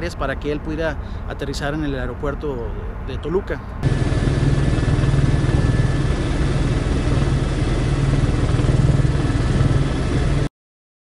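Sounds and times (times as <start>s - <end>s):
helicopter engine and rotor drone: 3.8s - 10.5s
thin steady whine: 3.8s - 10.5s.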